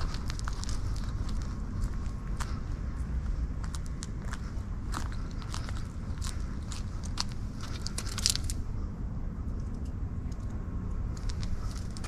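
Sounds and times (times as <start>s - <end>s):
footsteps crunching on leaves: 0.0s - 8.4s
wind rumble on microphone: 0.0s - 12.0s.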